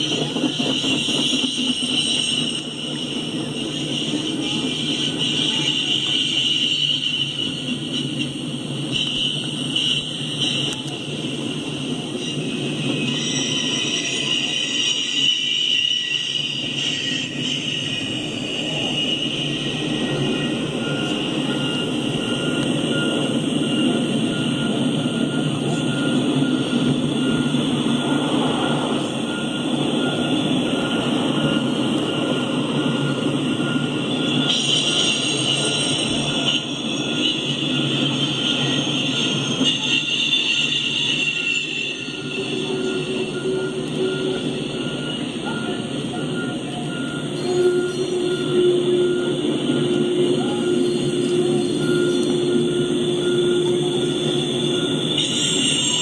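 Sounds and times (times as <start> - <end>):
freight train rolling on rails: 0.0 - 56.0
steady ringing tone: 0.0 - 56.0.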